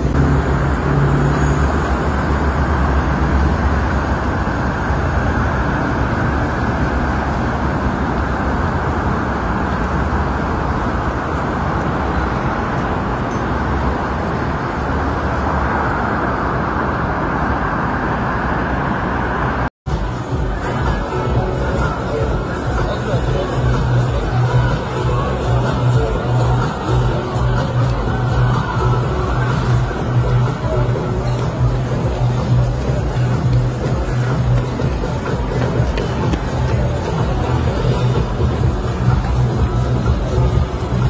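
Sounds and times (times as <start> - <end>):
road traffic noise: 0.0 - 41.0.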